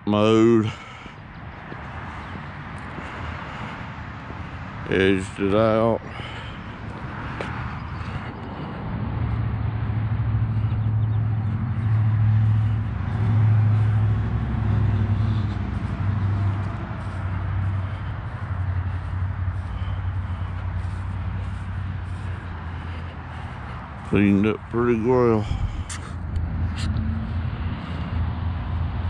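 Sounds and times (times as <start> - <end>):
faint outdoor background: 0.0 - 29.0.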